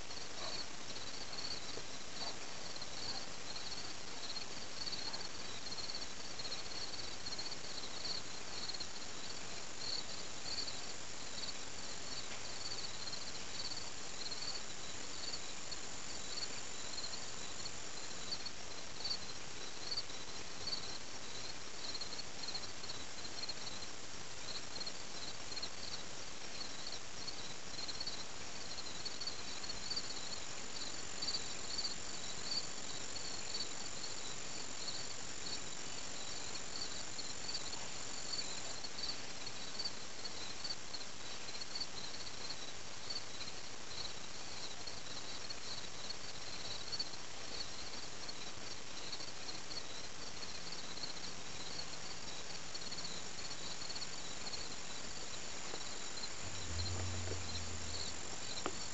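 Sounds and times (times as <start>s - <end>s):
insect chirps: 0.1s - 58.9s
high-pitched insect trill: 49.8s - 58.9s.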